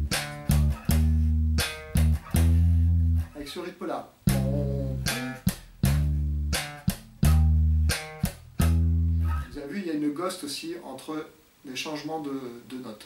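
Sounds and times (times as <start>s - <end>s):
slap bass notes: 0.0s - 3.6s, 4.2s - 9.6s.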